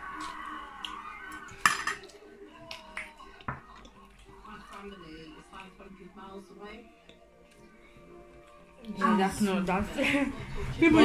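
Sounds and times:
metal fork clinking on plate: 1.6 - 2.1.

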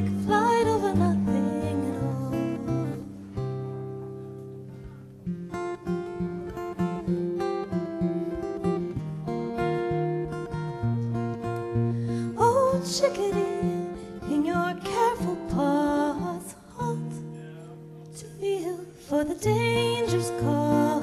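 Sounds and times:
acoustic guitar: 0.0 - 21.0.

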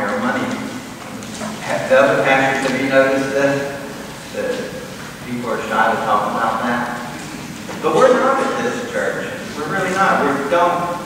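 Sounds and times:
man talking: 0.0 - 0.8, 1.4 - 11.0.

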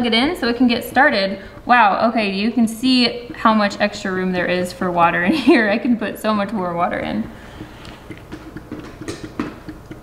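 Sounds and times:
hands tapping plastic humidifier: 7.2 - 10.0.

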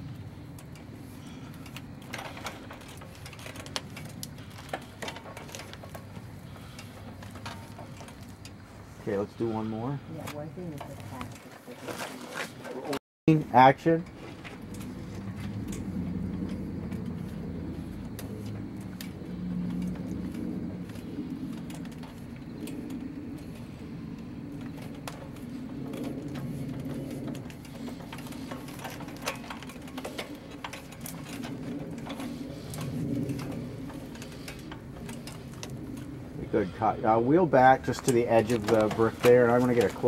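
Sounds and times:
wheelchair rolling over brick: 0.0 - 40.0.

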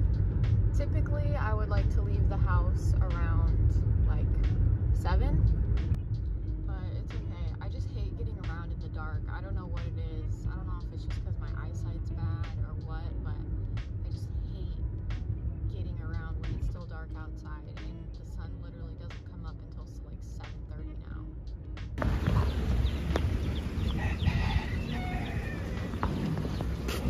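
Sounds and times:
road rumble inside car: 0.0 - 27.0.

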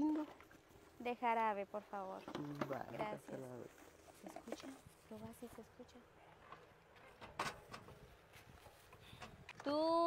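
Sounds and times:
faint knocks and clunks: 6.4 - 9.6.

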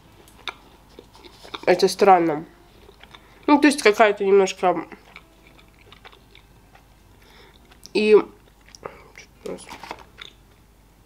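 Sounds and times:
person chewing food: 0.0 - 3.9, 4.8 - 10.6.

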